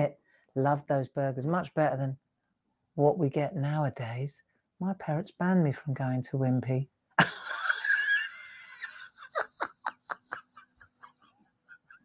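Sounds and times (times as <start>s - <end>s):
woman laughing: 7.2s - 12.0s.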